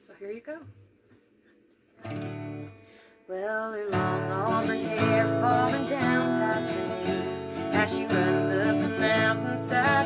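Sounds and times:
acoustic guitar chord strummed: 2.0s - 10.0s.

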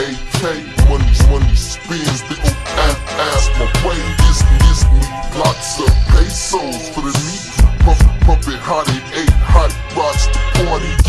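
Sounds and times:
slowed pitched-down rap vocal: 0.0s - 11.0s
deep bass hits: 0.8s - 1.8s, 2.4s - 5.2s, 5.9s - 6.5s, 7.6s - 8.5s.

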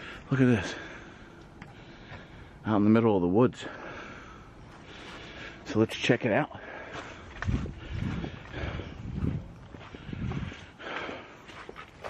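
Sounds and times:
footsteps on woodland ground: 4.6s - 12.0s.

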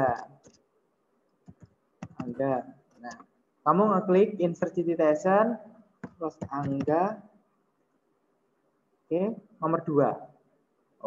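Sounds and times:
computer keyboard keystrokes: 1.5s - 2.3s, 6.0s - 7.0s.

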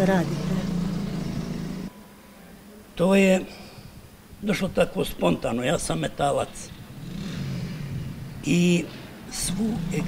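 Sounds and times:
vehicle engine humming: 0.0s - 1.9s, 6.6s - 10.0s.

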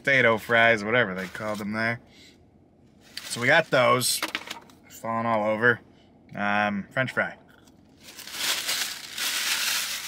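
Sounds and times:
paper wrapper crinkling: 7.9s - 10.0s.

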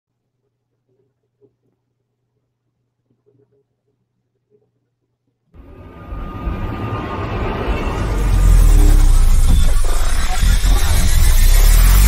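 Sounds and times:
intro music: 5.6s - 12.0s
rumbling whoosh sound effect: 5.6s - 12.0s.

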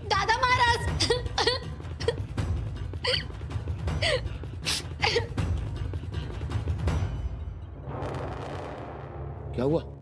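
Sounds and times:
low background score: 0.0s - 10.0s
woman sobbing: 3.0s - 5.6s.

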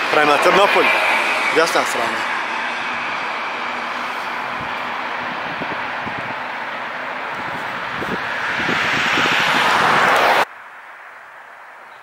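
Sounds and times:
road vehicle hiss: 0.0s - 10.5s.

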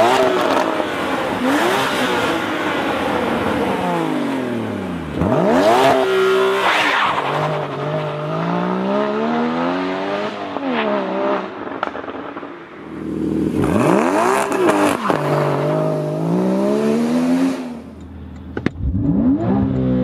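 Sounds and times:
car engine accelerating hard: 0.0s - 11.9s, 13.0s - 18.0s, 18.8s - 20.0s.

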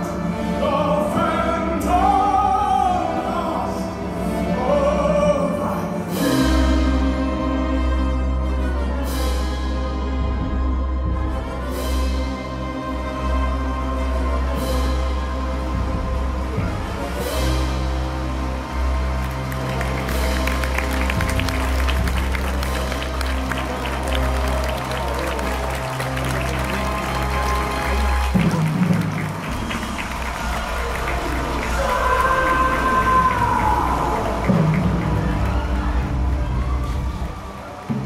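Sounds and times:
audience applause: 17.8s - 38.0s.

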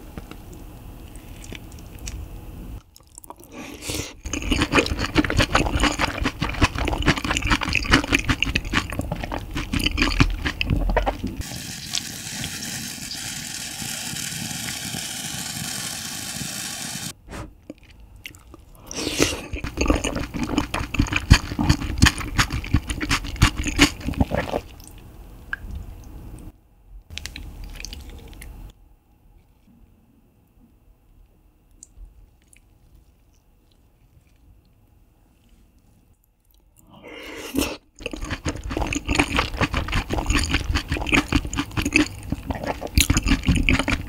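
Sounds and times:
wet chewing: 1.0s - 2.2s, 2.8s - 11.4s, 17.6s - 25.0s, 36.4s - 44.0s
food crunches: 4.2s - 11.4s, 17.7s - 24.7s, 38.0s - 44.0s.

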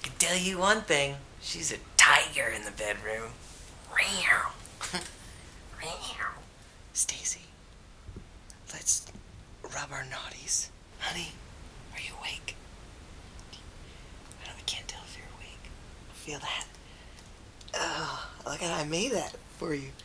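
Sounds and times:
man whispering: 1.5s - 4.6s, 5.8s - 6.4s, 7.0s - 7.5s, 9.7s - 12.6s, 14.3s - 16.7s.

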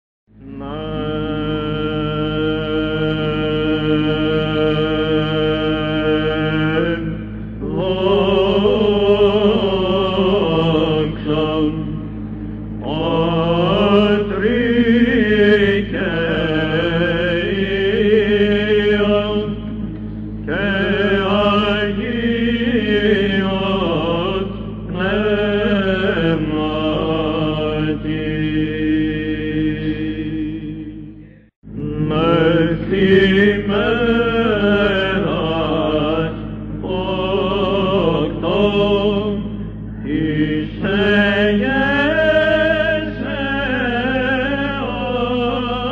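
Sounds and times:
steady low drone: 0.3s - 45.9s.

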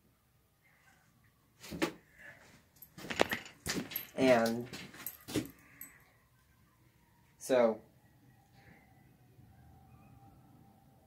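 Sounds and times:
wallet chain jingling: 2.8s - 6.0s.

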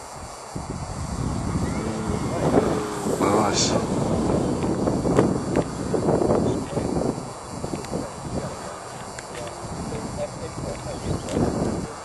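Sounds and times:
model plane motor and propeller: 0.0s - 12.0s
wind rumble on microphone: 0.0s - 12.0s.

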